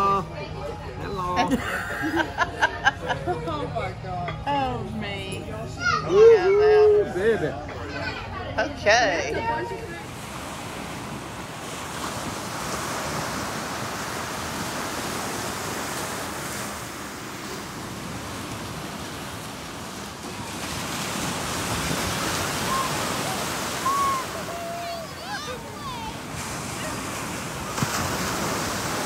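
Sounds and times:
small waves breaking on beach: 9.4 - 29.0.

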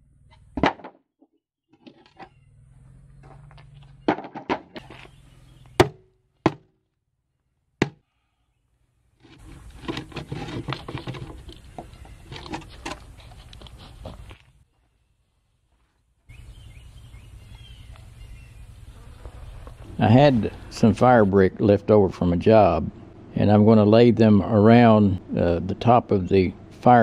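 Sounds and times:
sledgehammer knocking on boards: 0.6 - 1.0, 4.1 - 4.8, 5.8 - 6.7
boards rattling and scraping: 3.2 - 5.2, 9.2 - 14.5.

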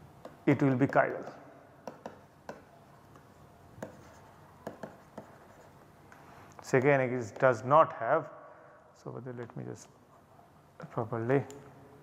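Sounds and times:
stylus strokes on a tablet: 2.0 - 6.4.

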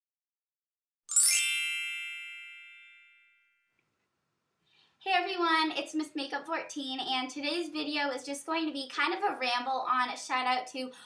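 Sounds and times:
bright bell-like chime: 1.1 - 3.7.

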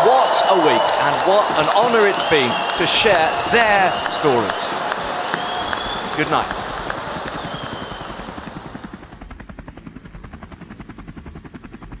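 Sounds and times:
noisy wash: 0.0 - 9.7
helicopter rotor chopping: 0.0 - 12.0.

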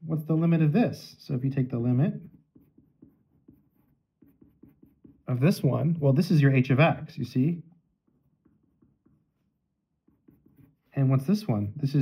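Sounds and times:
pencil scratching on paper: 1.7 - 5.8, 7.9 - 11.4.

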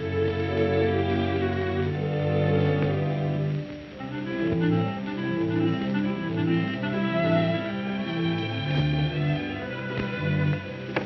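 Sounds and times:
instrumental film score music: 0.0 - 11.0.

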